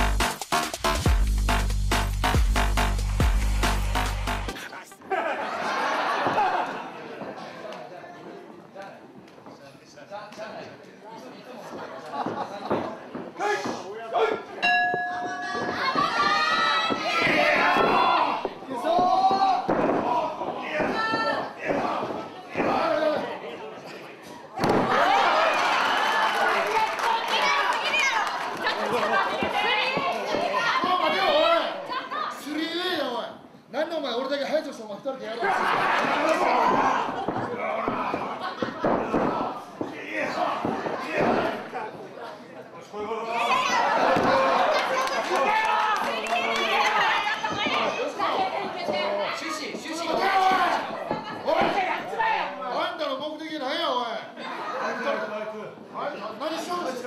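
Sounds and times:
crowd noise in a hall: 0:00.0 - 0:57.0
people shouting: 0:15.2 - 0:23.4, 0:24.6 - 0:31.9, 0:35.4 - 0:41.7, 0:43.4 - 0:52.6.

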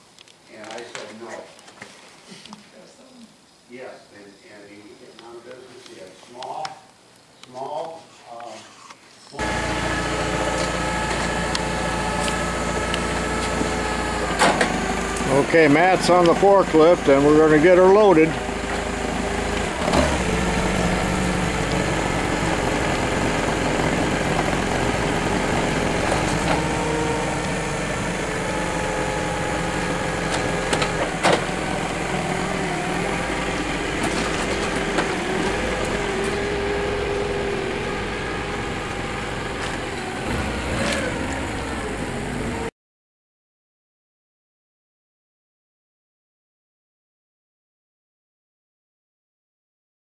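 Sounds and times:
forklift running: 0:09.4 - 0:42.7.

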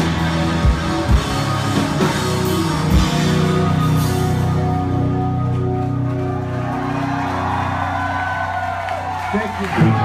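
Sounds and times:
electric guitars ringing chords: 0:00.0 - 0:09.2.

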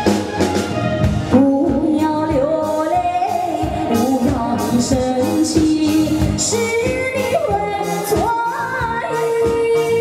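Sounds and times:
live band playing pop song: 0:00.0 - 0:10.0
woman singing: 0:01.3 - 0:10.0.

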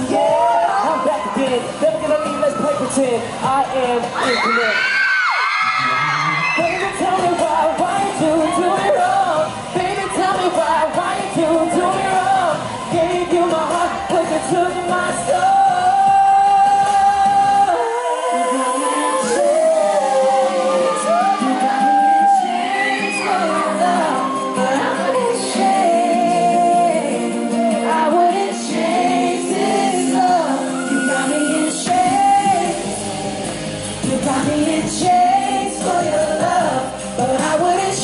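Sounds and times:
male vocal group singing: 0:00.0 - 0:05.0, 0:05.6 - 0:38.0
pop backing music: 0:00.0 - 0:38.0.

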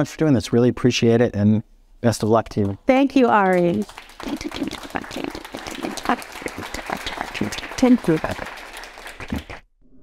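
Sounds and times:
audience applauding: 0:03.5 - 0:09.6.

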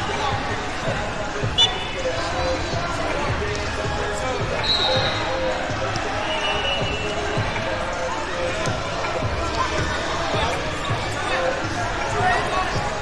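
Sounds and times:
many people talking: 0:00.0 - 0:13.0
referee whistle blasts: 0:04.6 - 0:05.4, 0:06.2 - 0:07.1.

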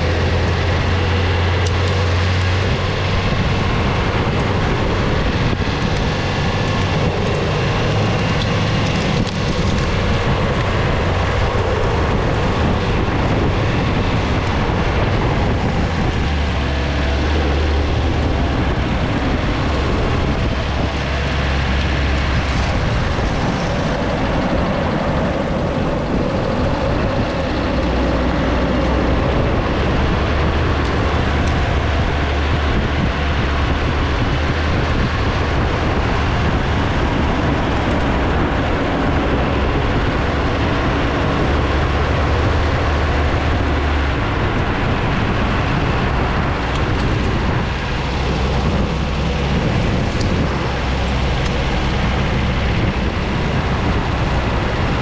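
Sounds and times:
wheels rolling on asphalt: 0:00.0 - 0:55.0
wind rushing on microphone: 0:00.0 - 0:55.0.

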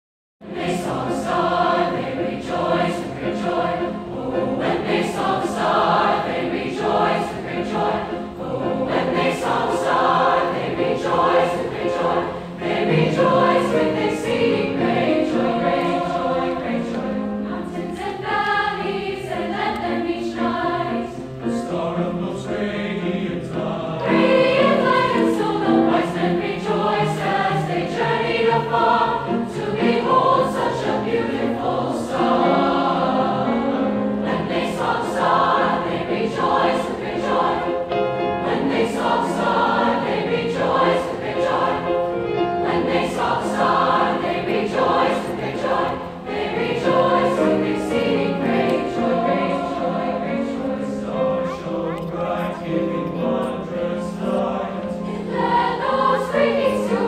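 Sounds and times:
grand piano accompaniment: 0:00.4 - 0:57.0
mixed choir singing: 0:00.4 - 0:57.0.

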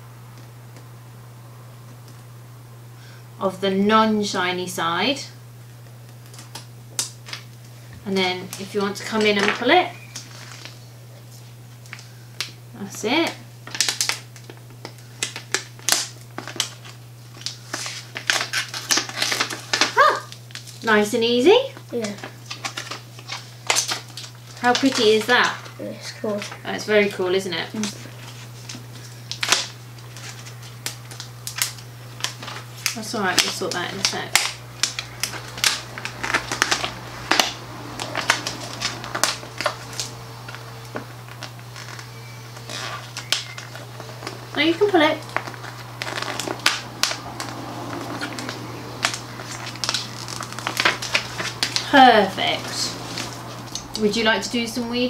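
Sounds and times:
vinyl sheet crinkling: 0:05.5 - 0:55.0.

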